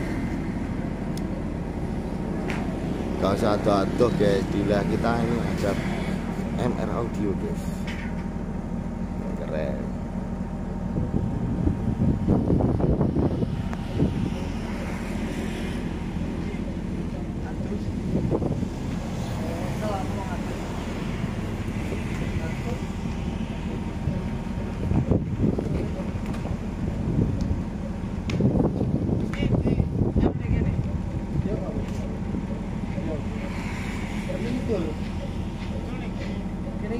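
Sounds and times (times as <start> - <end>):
low engine rumble: 0.0 - 36.9
people talking: 2.3 - 7.9, 9.2 - 10.0, 16.2 - 18.3, 19.3 - 21.0, 21.8 - 26.6, 29.2 - 36.9.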